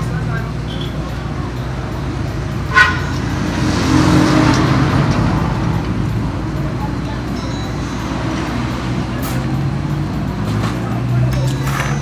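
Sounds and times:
motor vehicle engine rumbling: 0.0 - 12.0.

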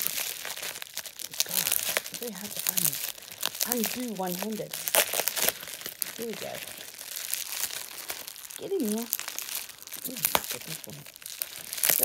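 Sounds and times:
newspaper and bubble wrap crinkling: 0.0 - 12.0.

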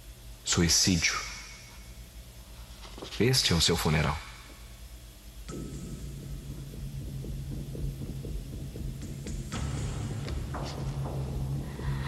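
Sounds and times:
low droning hum with pulse: 4.4 - 12.0.

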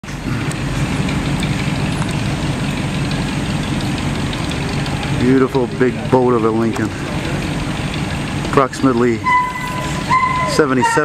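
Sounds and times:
car engine exhaust rumble: 0.0 - 11.0.

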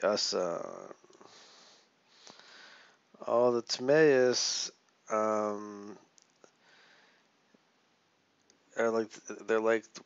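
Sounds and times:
faint breaths: 1.0 - 3.2, 5.8 - 7.4.

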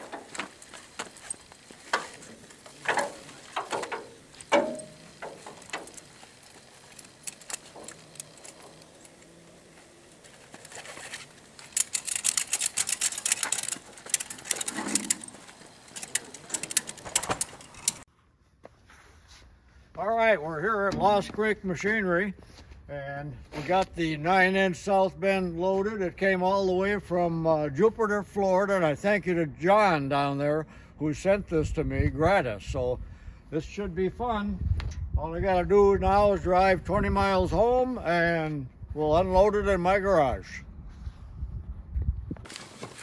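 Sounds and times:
rapid ratchet clicking: 0.0 - 18.0
strap hardware clanking: 0.0 - 18.0.

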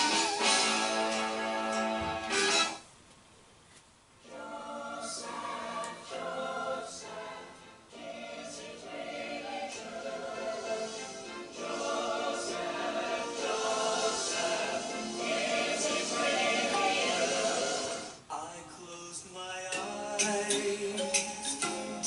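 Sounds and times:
choir singing with accompaniment: 0.0 - 2.8, 4.2 - 18.2.

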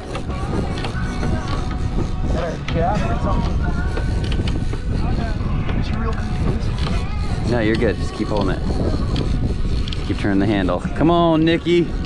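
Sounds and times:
boat noise: 0.0 - 12.0
indistinct voices: 0.0 - 12.0
wind rumble on microphone: 0.0 - 12.0.

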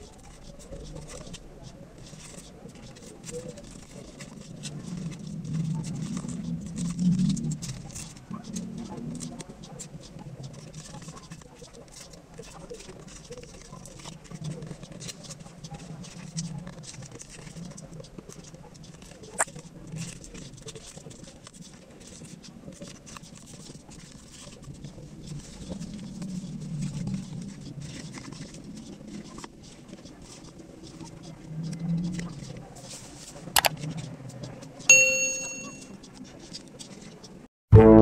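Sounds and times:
low hum: 37.7 - 38.0.

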